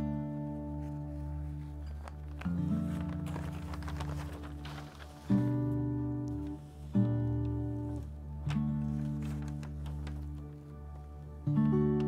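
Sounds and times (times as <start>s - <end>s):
soft background music: 0.0s - 12.0s
newspaper crackling and rustling: 0.5s - 11.4s.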